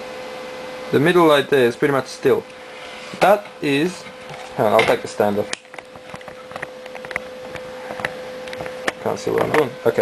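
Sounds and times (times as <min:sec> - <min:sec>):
background hum: 0:00.0 - 0:10.0.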